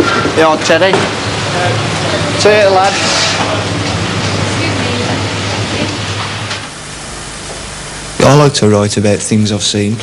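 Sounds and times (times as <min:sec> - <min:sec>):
steady hissing noise: 0:00.0 - 0:10.0.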